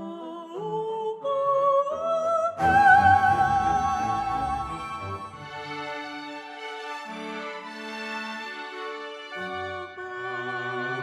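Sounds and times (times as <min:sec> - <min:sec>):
soprano voice singing wordless melody: 0:00.0 - 0:05.3
soft orchestral accompaniment: 0:01.9 - 0:11.0.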